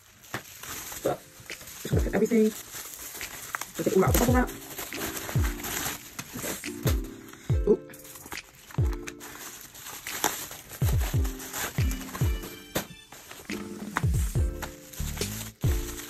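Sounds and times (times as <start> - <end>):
music with sliding bass: 13.5 - 16.0.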